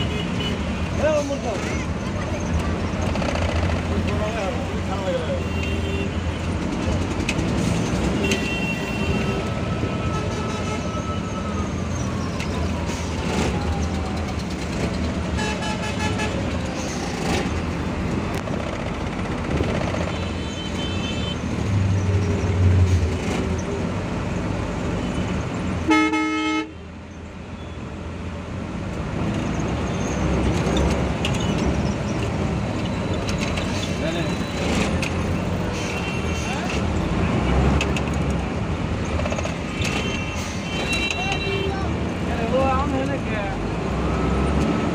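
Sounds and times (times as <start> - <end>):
traffic engines running: 0.0 - 44.9
vehicle horns honking: 8.1 - 11.0, 15.4 - 16.5, 20.0 - 21.5, 25.8 - 26.8, 39.8 - 41.9
loud horn blast: 25.9 - 26.8.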